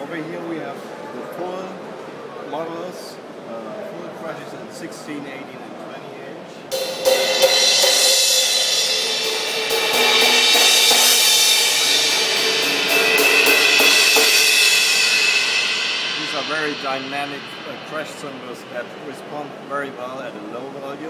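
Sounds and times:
crash cymbals struck with drumstick: 6.7s - 20.2s.

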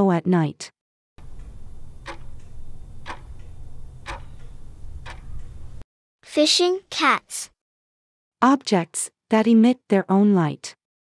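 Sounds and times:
clock ticking: 1.2s - 5.8s.

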